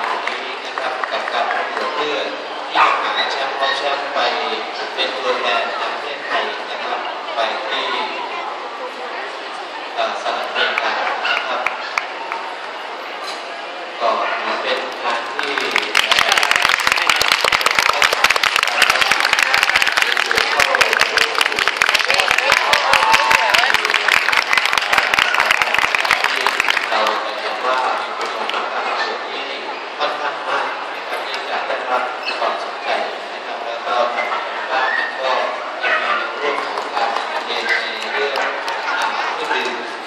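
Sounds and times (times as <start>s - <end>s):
spectators clapping: 0.0s - 2.0s, 10.7s - 12.4s, 14.7s - 28.6s, 36.3s - 39.8s
crowd chatter: 0.0s - 40.0s.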